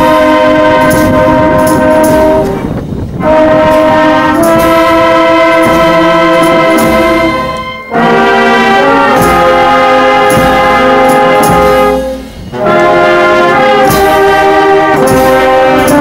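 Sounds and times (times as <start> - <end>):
wind band playing held chords: 0.0 - 16.0.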